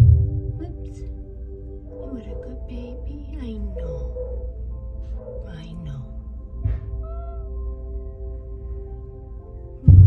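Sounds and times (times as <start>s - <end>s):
cat meowing: 7.0s - 7.7s.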